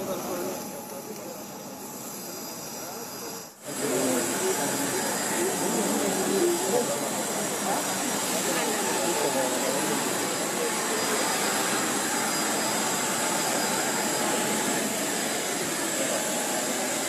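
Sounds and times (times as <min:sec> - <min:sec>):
crowd chatter: 0:00.0 - 0:17.0
jet turbine whine: 0:00.0 - 0:17.0.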